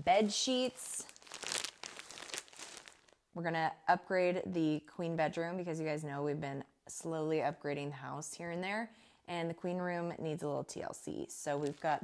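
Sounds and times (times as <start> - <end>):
plastic packaging crinkling: 0.0 - 3.2, 11.6 - 12.0.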